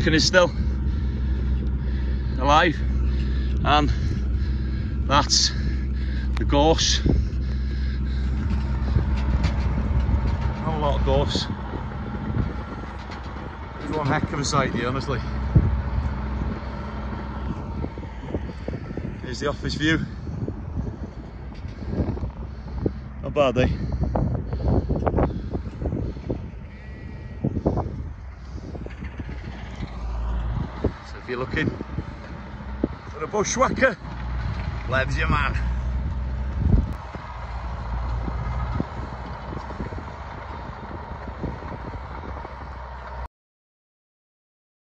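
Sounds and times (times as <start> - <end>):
brush-cutting machine engine: 0.0 - 43.2.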